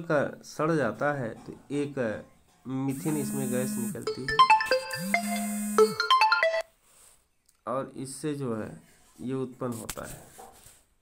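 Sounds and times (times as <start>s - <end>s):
man talking: 0.0s - 4.4s, 7.6s - 10.3s
smartphone ringtone melody: 2.9s - 6.7s.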